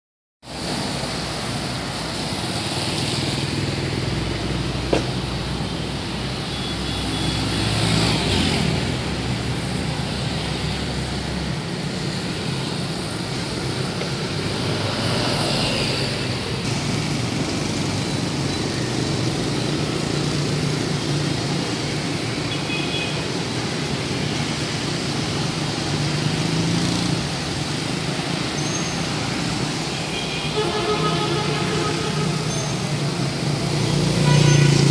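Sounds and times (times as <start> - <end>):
motorbikes and cars passing: 0.5 - 34.9.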